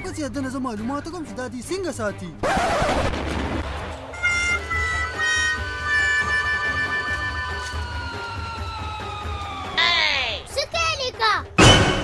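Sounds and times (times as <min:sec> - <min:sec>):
comic musical notes sinking in pitch: 0:04.2 - 0:10.0.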